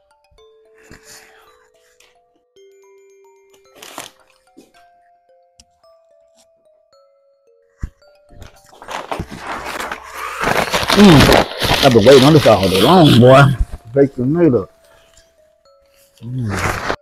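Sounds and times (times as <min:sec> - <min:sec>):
quiet slow background music: 0:00.0 - 0:17.0
paper bag and wrapper crinkling: 0:03.7 - 0:04.5, 0:08.4 - 0:13.8, 0:16.2 - 0:17.0.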